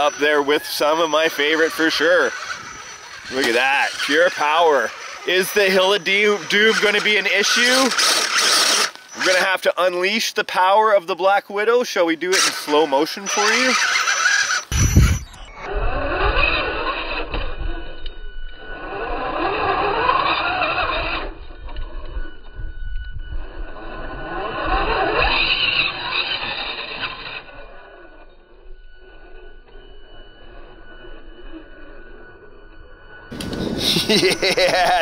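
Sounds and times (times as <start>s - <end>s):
tire scrapes on rocks: 0.0s - 10.1s, 12.3s - 17.9s, 24.1s - 28.1s
slowed rc car motor whine: 0.0s - 10.2s, 12.3s - 35.0s.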